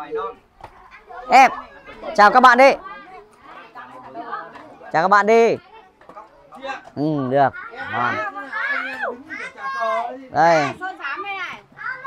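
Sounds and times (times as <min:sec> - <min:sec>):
children's voices: 0:00.1 - 0:04.9, 0:05.6 - 0:12.0.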